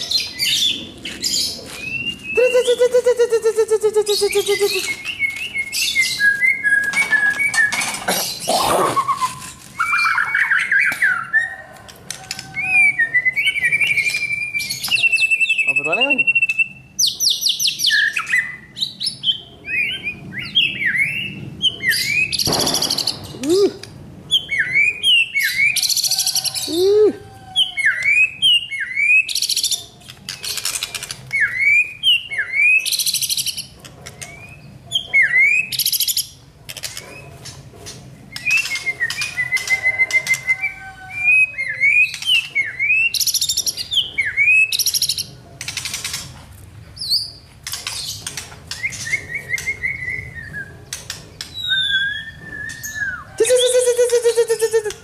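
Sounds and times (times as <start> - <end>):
songbird singing varied chirps: 1.8 - 7.8.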